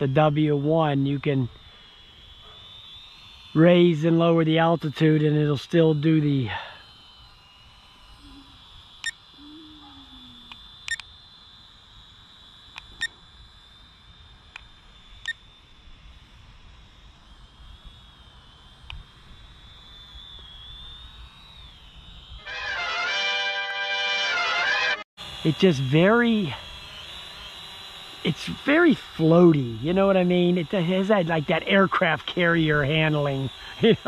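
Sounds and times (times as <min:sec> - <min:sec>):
drone propellers whining: 0:00.0 - 0:34.0
loud burst of music: 0:22.4 - 0:25.0.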